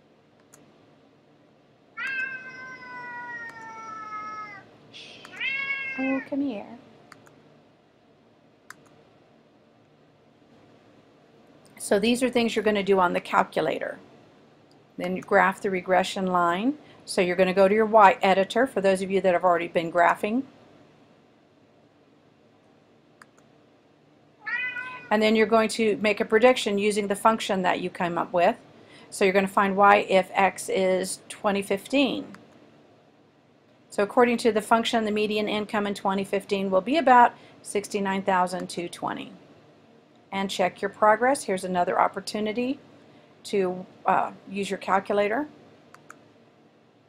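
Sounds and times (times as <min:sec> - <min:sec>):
faint clicks: 0:00.4 - 0:00.7, 0:03.5 - 0:03.7, 0:05.2 - 0:05.5, 0:07.1 - 0:07.4, 0:08.7 - 0:09.0, 0:23.2 - 0:23.5, 0:45.9 - 0:46.2
cat meowing: 0:02.0 - 0:06.3, 0:24.4 - 0:25.1.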